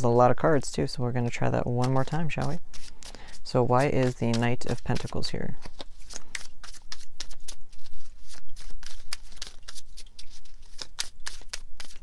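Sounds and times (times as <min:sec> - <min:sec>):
cards being shuffled: 0:01.6 - 0:12.0.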